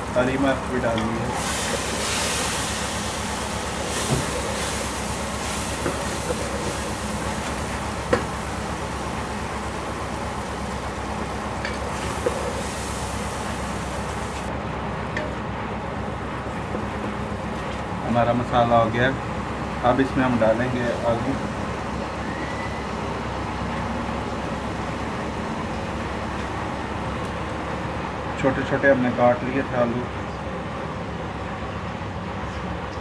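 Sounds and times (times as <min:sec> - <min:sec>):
food sizzling in oil: 0:00.6 - 0:14.5.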